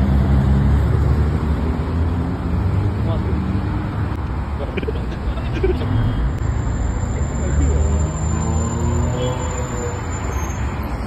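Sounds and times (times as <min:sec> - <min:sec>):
cars and truck driving past: 0:00.0 - 0:11.0.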